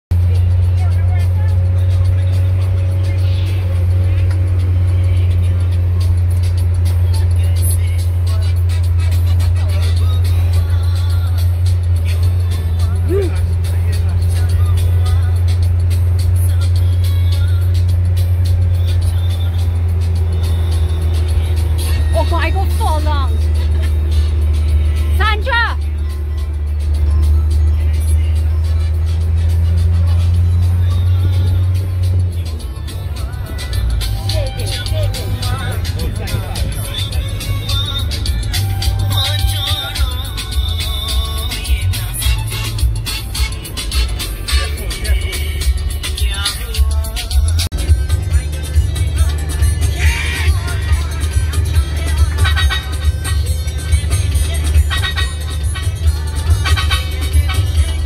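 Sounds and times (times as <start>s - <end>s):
minibus engine drone: 0.0s - 58.0s
music playing: 0.1s - 58.0s
road noise: 0.1s - 58.0s
brief voices: 48.5s - 53.6s.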